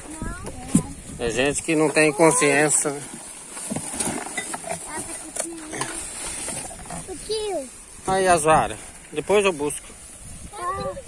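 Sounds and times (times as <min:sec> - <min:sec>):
cardboard and trash rustling: 0:00.0 - 0:08.1.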